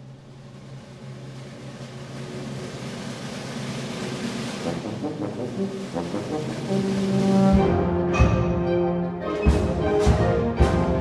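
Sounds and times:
percussion roll: 0.0s - 11.0s
wind ensemble sustained note: 0.0s - 11.0s.

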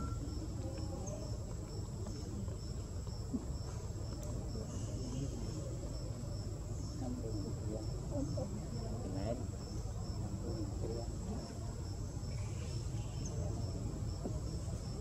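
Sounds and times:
insect chirping: 0.0s - 1.3s.

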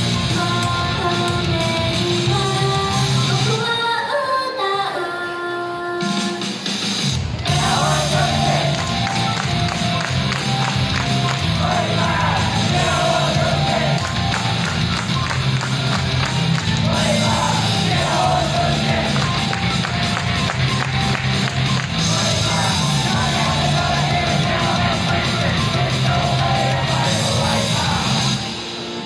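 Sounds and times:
pop band backing: 0.0s - 4.2s, 4.9s - 29.0s
woman singing: 0.3s - 6.4s
steady drum beat: 7.4s - 28.4s.

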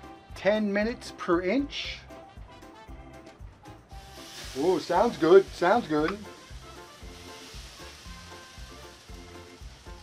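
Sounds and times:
faint background music with beat: 0.0s - 10.0s
meat sizzling on grill: 3.9s - 10.0s.

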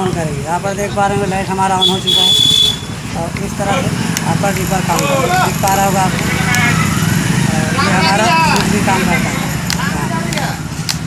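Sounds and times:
man speaking: 0.0s - 6.8s, 7.4s - 10.7s.

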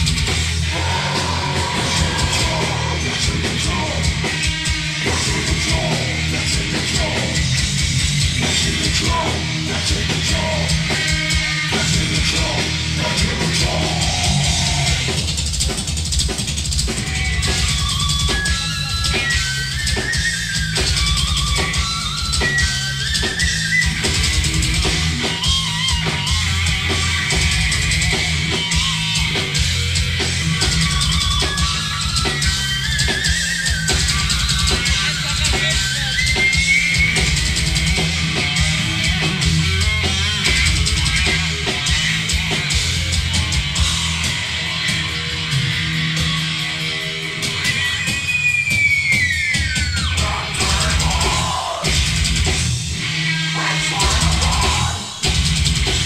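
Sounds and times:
guitar pitch dive: 0.0s - 15.3s, 17.0s - 56.0s
metal band playing live: 0.0s - 56.0s.

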